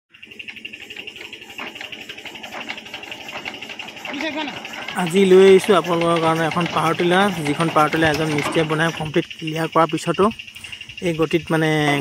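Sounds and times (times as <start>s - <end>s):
diesel engine idling: 0.1s - 12.0s.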